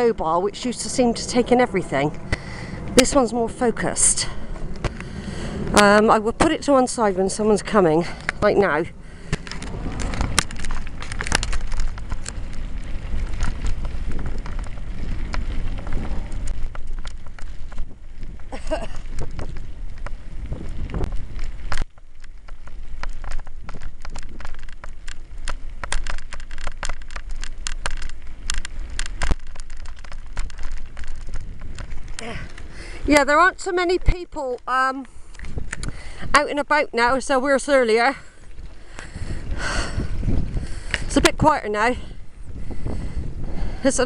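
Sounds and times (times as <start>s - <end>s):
bicycle tyres crunching on gravel: 0.0s - 44.0s
wind rumbling on microphone: 0.0s - 44.0s.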